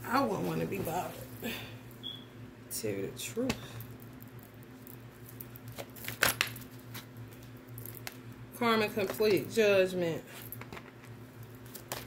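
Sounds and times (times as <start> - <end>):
steady low hum: 0.0 - 12.0
cards being handled: 10.5 - 12.0.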